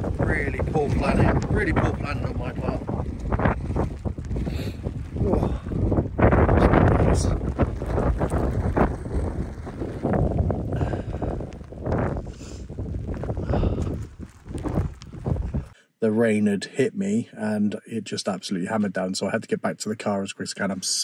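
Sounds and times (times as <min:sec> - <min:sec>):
wind buffeting microphone: 0:00.0 - 0:15.8.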